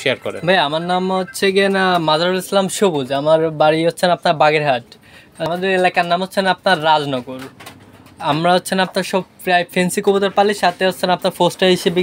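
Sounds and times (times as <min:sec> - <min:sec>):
man speaking: 0:00.0 - 0:07.6, 0:08.2 - 0:12.0.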